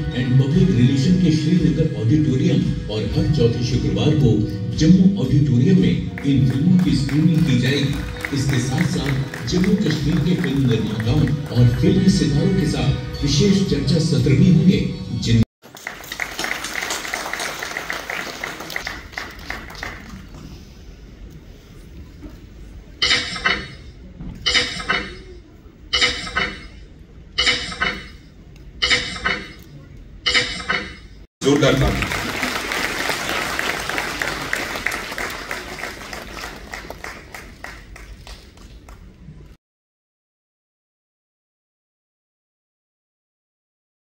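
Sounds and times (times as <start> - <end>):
audience applauding: 6.2 - 12.1, 15.6 - 20.4, 31.4 - 39.1.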